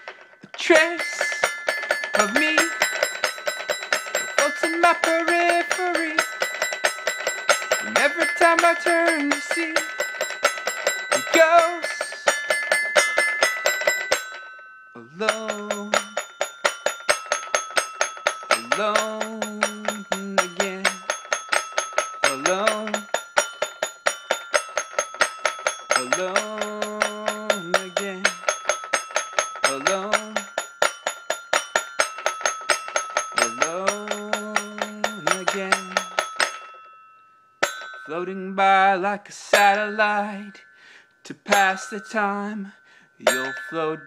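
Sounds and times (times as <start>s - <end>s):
toy xylophone notes: 0.0s - 44.0s.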